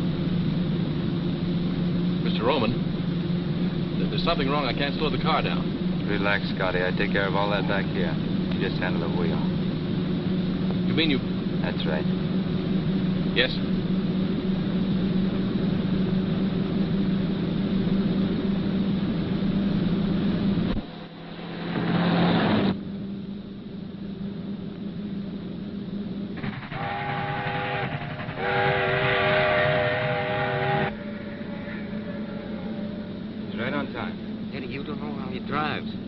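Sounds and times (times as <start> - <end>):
rush of noise: 0.0 - 22.9, 26.4 - 36.0
car engine running: 0.0 - 36.0
train whistle: 26.4 - 34.2.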